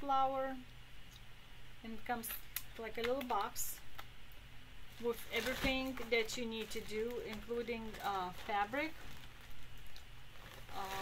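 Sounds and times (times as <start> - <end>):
rustling of papers and kit: 4.9 - 11.0.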